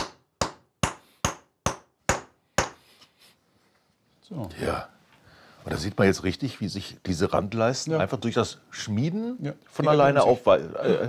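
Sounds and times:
stone hammer striking bronze: 0:00.0 - 0:02.8.

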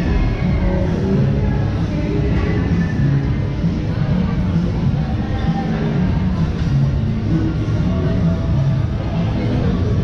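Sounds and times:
music with strong bass line: 0:00.0 - 0:10.0.

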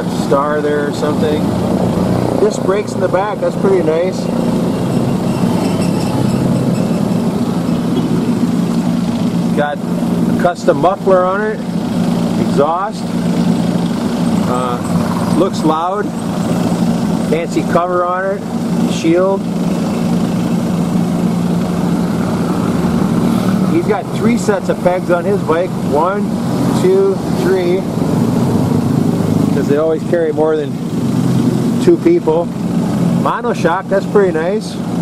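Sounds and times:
engine idling: 0:00.0 - 0:35.0.

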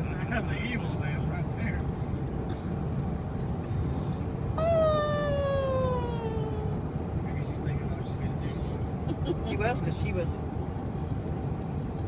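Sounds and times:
car road rumble: 0:00.0 - 0:12.0
woman whining: 0:04.6 - 0:06.8.

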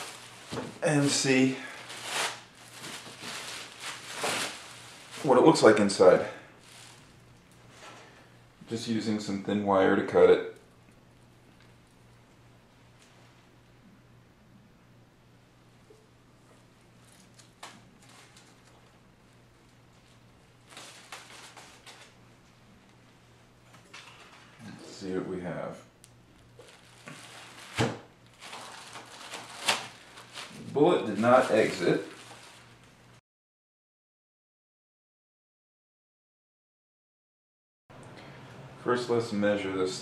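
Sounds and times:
scrapes and rustles: 0:00.0 - 0:07.1
plastic sheeting rustling: 0:00.0 - 0:08.0, 0:17.0 - 0:18.9, 0:19.9 - 0:22.2, 0:26.6 - 0:33.2
low steady hum: 0:00.0 - 0:33.2.

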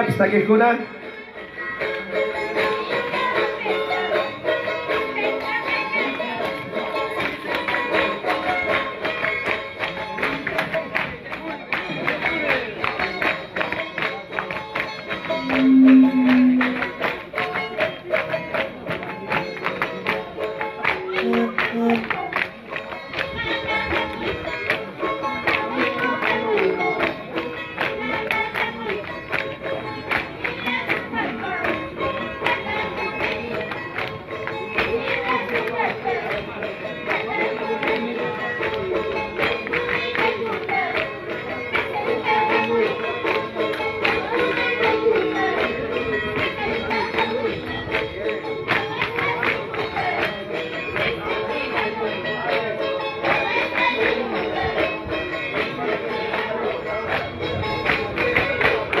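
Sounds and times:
folk melody: 0:00.0 - 0:59.0
low note: 0:15.4 - 0:17.0.

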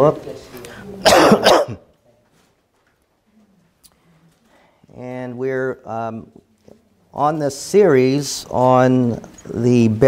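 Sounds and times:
man coughing: 0:01.0 - 0:01.8.

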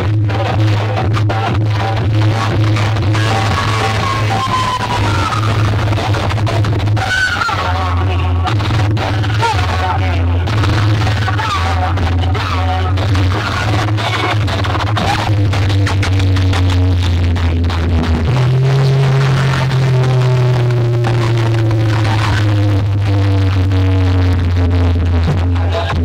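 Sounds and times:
heavy sustained bass notes: 0:00.0 - 0:26.0
loud electronic dance music: 0:00.0 - 0:26.0.

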